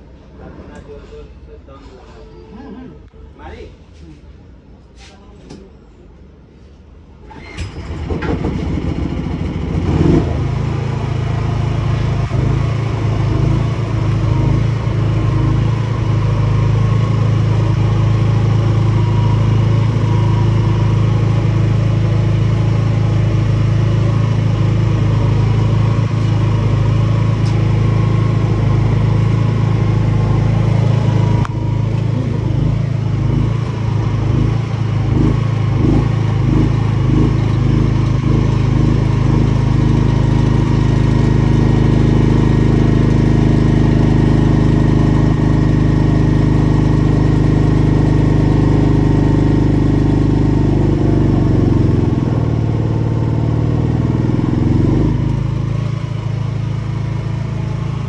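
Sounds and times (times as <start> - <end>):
petrol generator engine running: 7.1 - 58.0.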